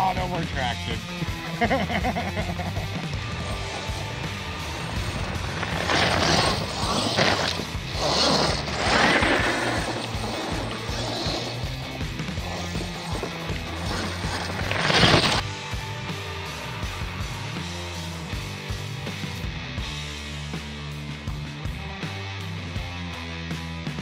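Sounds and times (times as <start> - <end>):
background music: 0.0 - 24.0
toy truck tyre and drivetrain noise: 3.0 - 15.4.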